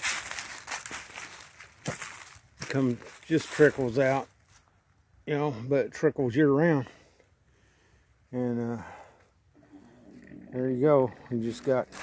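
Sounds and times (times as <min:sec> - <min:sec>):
footsteps through dry leaves: 0:00.0 - 0:04.7.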